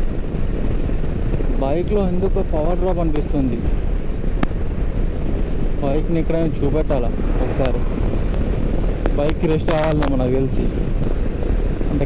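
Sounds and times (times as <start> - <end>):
motorcycle engine and tyres: 0.0 - 12.0
wind on microphone: 0.0 - 12.0.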